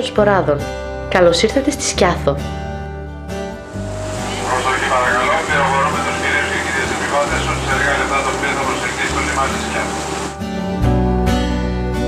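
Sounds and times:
low music: 0:03.4 - 0:11.2
ferry rumble: 0:03.5 - 0:10.4
many voices chattering: 0:04.1 - 0:10.3.

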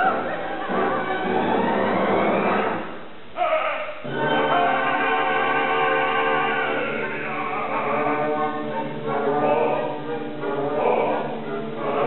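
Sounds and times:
opera chorus singing: 0:00.0 - 0:02.8, 0:03.4 - 0:12.0
orchestra playing: 0:00.0 - 0:03.0, 0:04.0 - 0:12.0.

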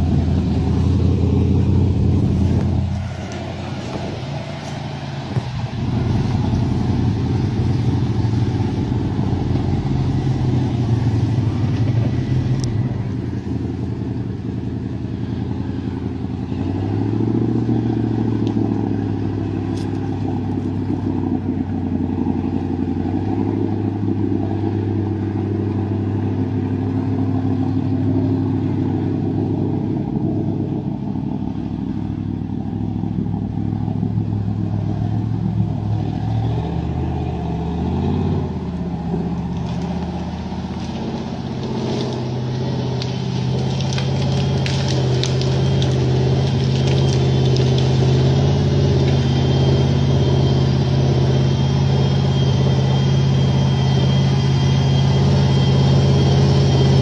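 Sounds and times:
engine revving under load: 0:00.0 - 0:57.0.

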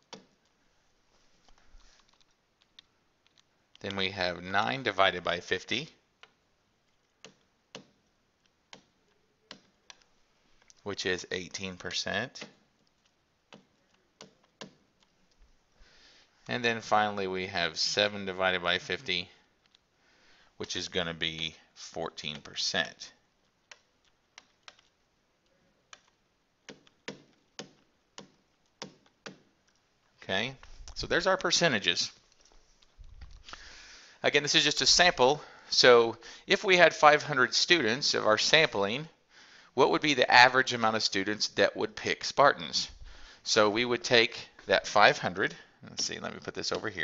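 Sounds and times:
stylus clicking on tablet: 0:00.0 - 0:00.5, 0:01.4 - 0:04.0, 0:06.2 - 0:10.8, 0:11.5 - 0:15.5, 0:22.2 - 0:29.9, 0:30.6 - 0:33.6
stylus tapping on tablet: 0:13.5 - 0:14.8, 0:25.9 - 0:29.5.

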